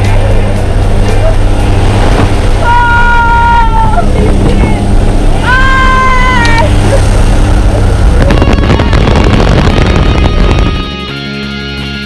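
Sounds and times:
plane engine rushing: 0:00.0 - 0:11.6
wind at open door: 0:00.7 - 0:11.0
woman's high-pitched yell: 0:02.6 - 0:04.1.

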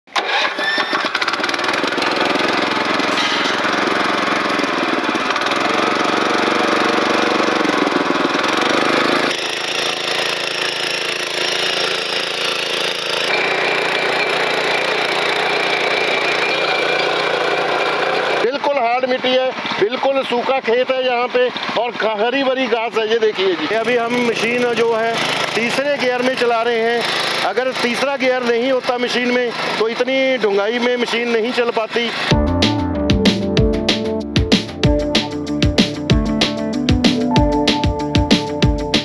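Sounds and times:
small petrol engine running: 0:00.1 - 0:19.9, 0:21.3 - 0:22.3, 0:23.3 - 0:32.4.

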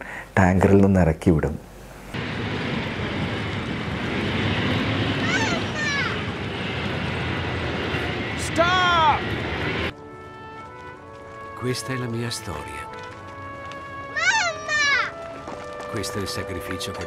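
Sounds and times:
tank engine running: 0:02.2 - 0:14.2
boy shouting: 0:05.2 - 0:06.2, 0:08.4 - 0:09.3, 0:14.1 - 0:15.2.

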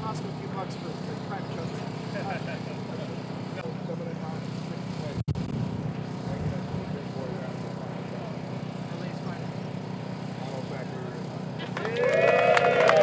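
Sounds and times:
steady low rumble: 0:05.2 - 0:07.0.

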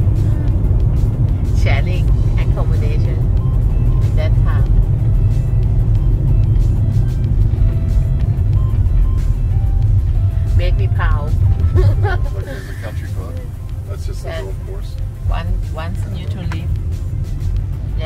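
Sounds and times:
car road and engine rumble: 0:00.0 - 0:18.0
voices: 0:04.0 - 0:04.8, 0:10.6 - 0:16.8.

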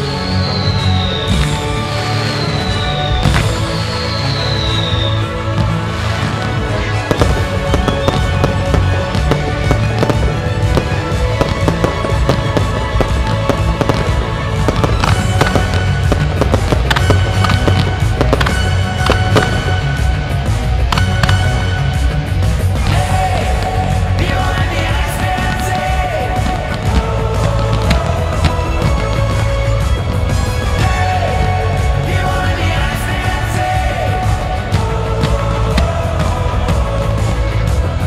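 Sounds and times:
pop music with steady beat: 0:19.0 - 0:38.0.

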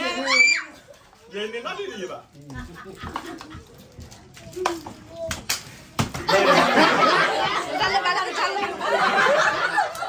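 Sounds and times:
group chatter: 0:00.0 - 0:10.0.

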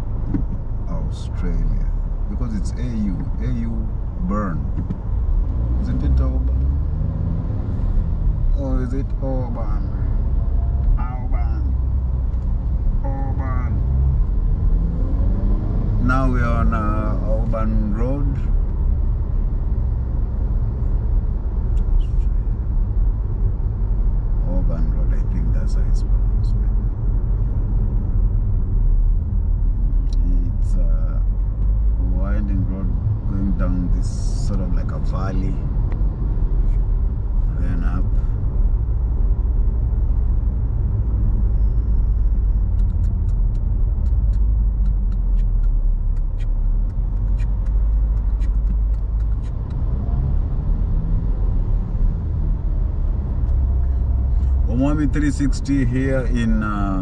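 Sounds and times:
car road and engine rumble: 0:00.0 - 0:57.0
person speaking: 0:54.6 - 0:57.0.

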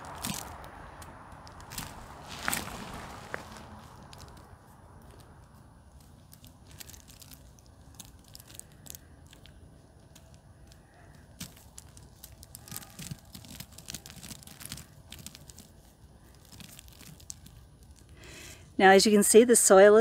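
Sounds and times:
roots and soil tearing: 0:00.0 - 0:18.2.

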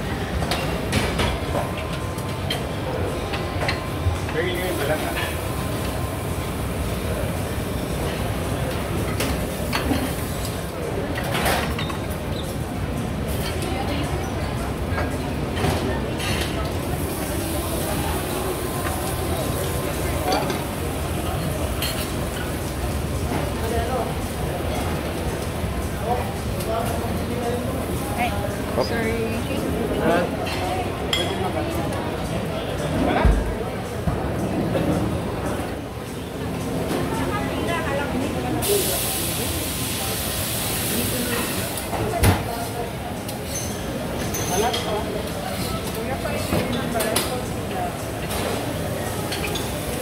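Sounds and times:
background chatter of diners: 0:00.0 - 0:50.0
dishes and utensils clinking: 0:08.0 - 0:12.6, 0:18.7 - 0:23.6, 0:30.1 - 0:31.6, 0:43.2 - 0:47.5, 0:48.2 - 0:50.0.

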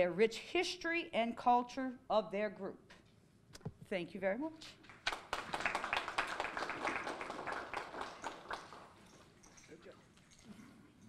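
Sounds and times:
people clapping: 0:04.8 - 0:09.3.

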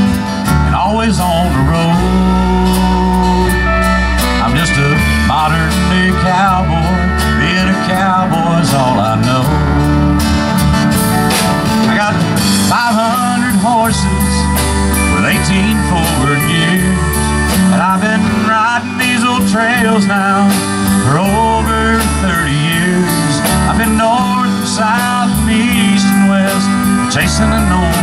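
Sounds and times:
acoustic guitar strumming: 0:00.0 - 0:28.0
bass: 0:00.0 - 0:28.0
lead guitar solo with bent notes: 0:00.0 - 0:28.0.

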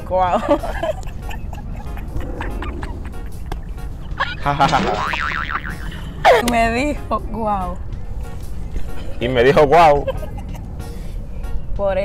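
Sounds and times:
background music: 0:00.0 - 0:12.0
woman laughing: 0:00.2 - 0:05.0
cartoon boing spring effect: 0:04.6 - 0:05.9.

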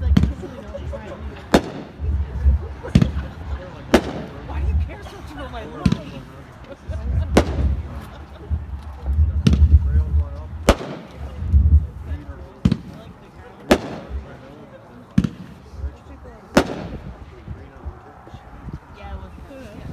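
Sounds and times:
firework bangs: 0:00.0 - 0:05.1, 0:05.8 - 0:06.3, 0:06.9 - 0:14.5, 0:15.2 - 0:17.6
low rumble: 0:01.9 - 0:03.6, 0:06.9 - 0:12.3.

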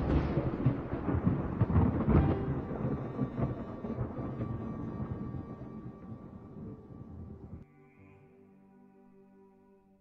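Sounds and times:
thunder rumbling: 0:00.0 - 0:07.6.

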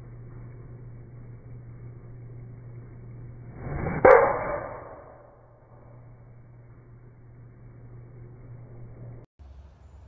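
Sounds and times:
golf club striking ball: 0:03.8 - 0:05.4.

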